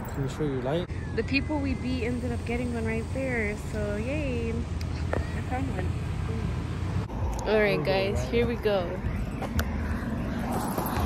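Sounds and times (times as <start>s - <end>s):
low wind rumble: 0.0s - 11.0s.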